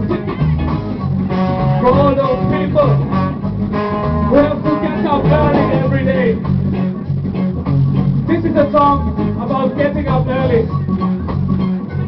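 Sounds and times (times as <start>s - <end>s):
bass line: 0.0s - 12.0s
lead melody with bent notes: 0.0s - 12.0s
reggae band playing: 0.0s - 12.0s.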